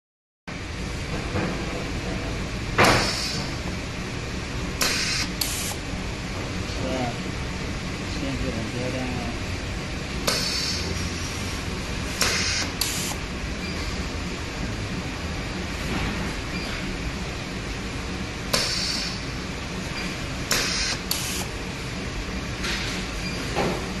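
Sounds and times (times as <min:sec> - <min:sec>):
machine low hum: 0:00.5 - 0:24.0.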